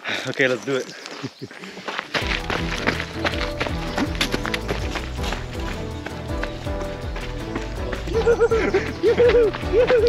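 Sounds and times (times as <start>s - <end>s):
music with beat and chords: 2.2s - 10.0s.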